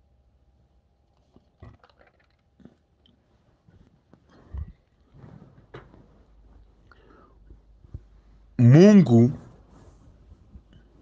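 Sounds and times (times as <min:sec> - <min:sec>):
man breathing faintly: 0:06.8 - 0:08.6
man whispering: 0:08.6 - 0:09.4.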